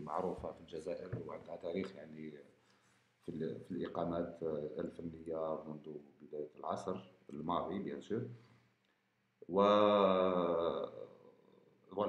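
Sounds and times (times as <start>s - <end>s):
man's drawn-out hesitation sound: 0.0s - 2.4s, 3.3s - 8.3s, 9.5s - 11.1s.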